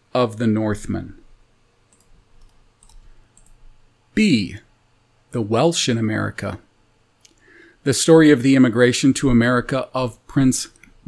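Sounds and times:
low room hum: 0:00.0 - 0:11.0
faint small clicks: 0:01.9 - 0:03.6, 0:07.2 - 0:07.4.

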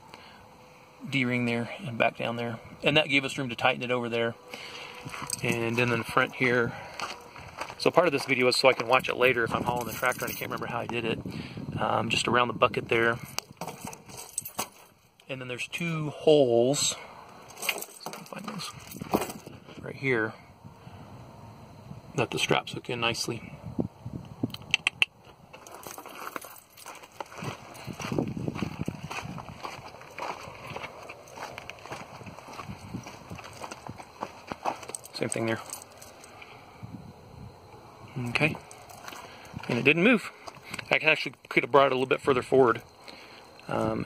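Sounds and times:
footsteps on gravel: 0:04.6 - 0:11.0, 0:25.5 - 0:36.3, 0:38.6 - 0:40.9.

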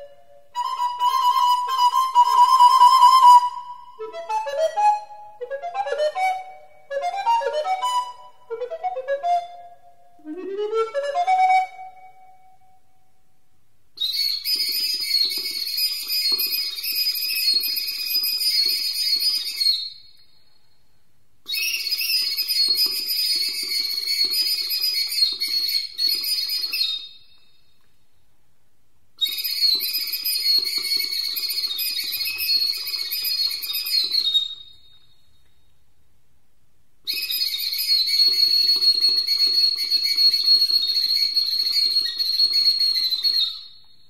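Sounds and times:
recorder playing high trills: 0:00.0 - 0:12.6.

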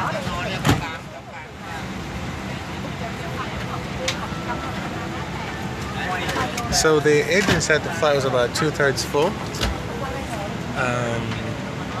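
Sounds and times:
passengers' voices: 0:00.0 - 0:12.0.

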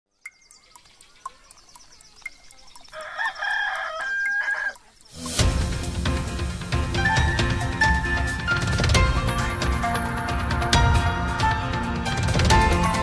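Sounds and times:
clock ticking: 0:00.2 - 0:06.0
rooster crowing: 0:02.9 - 0:04.9
theme music: 0:05.1 - 0:13.0.

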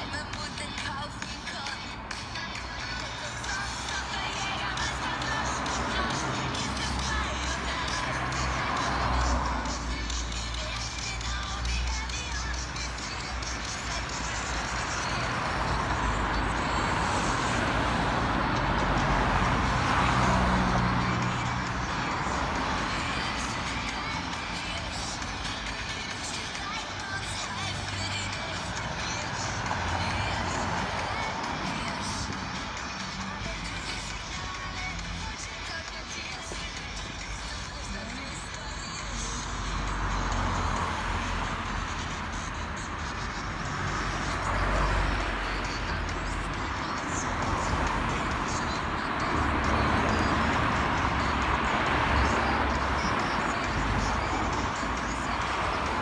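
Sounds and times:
car passing: 0:00.0 - 0:56.0
music playing: 0:00.0 - 0:56.0.

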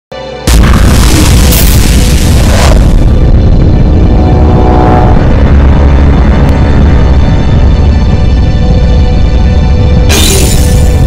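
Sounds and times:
dramatic music: 0:00.1 - 0:11.0
deep boom: 0:00.5 - 0:10.1.

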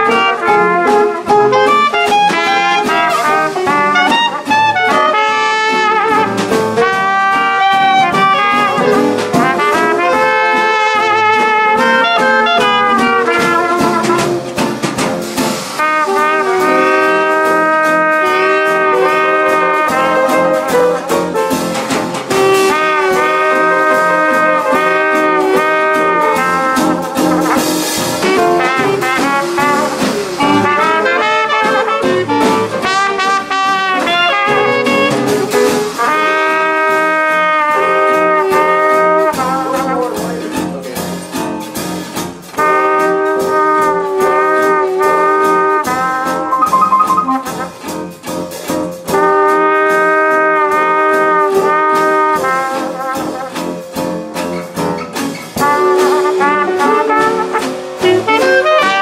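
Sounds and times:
clarinet: 0:00.0 - 0:14.6, 0:15.8 - 0:21.6, 0:22.2 - 0:40.0, 0:42.6 - 0:48.3, 0:55.0 - 0:59.0
trumpet: 0:00.0 - 0:40.5, 0:42.3 - 0:59.0
jazz band playing: 0:00.0 - 0:59.0.

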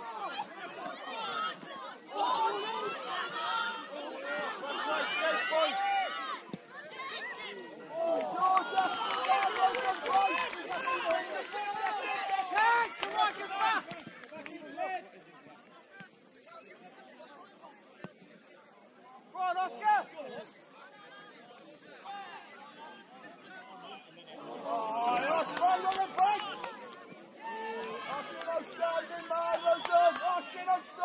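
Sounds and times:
loud shout: 0:00.0 - 0:14.0, 0:27.4 - 0:31.0
players and spectators shouting: 0:00.0 - 0:15.0, 0:22.0 - 0:31.0.

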